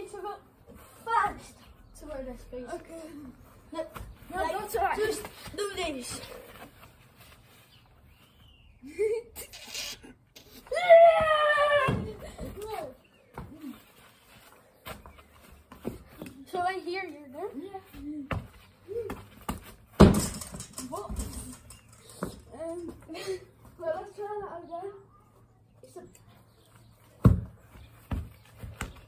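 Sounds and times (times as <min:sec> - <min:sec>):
boy shouting: 0:10.6 - 0:13.0
football being kicked: 0:27.2 - 0:29.0.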